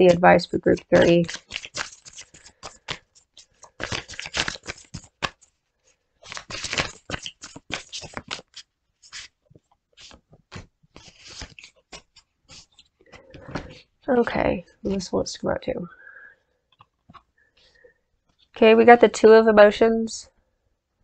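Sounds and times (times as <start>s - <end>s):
cards being shuffled: 0.0s - 5.6s, 6.2s - 13.9s, 16.8s - 17.3s.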